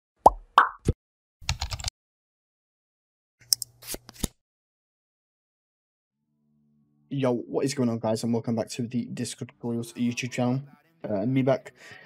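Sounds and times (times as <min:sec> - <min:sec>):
cartoon pops: 0:00.2 - 0:01.0
keyboard typing clicks: 0:01.5 - 0:01.9.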